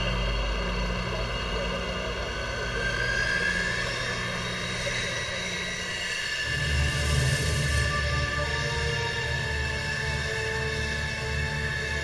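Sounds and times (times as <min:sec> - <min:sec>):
jet engine whine: 0:00.0 - 0:12.0.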